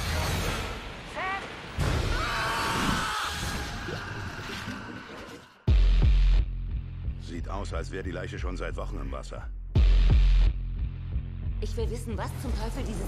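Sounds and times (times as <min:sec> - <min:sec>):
dramatic music: 0:03.7 - 0:13.0.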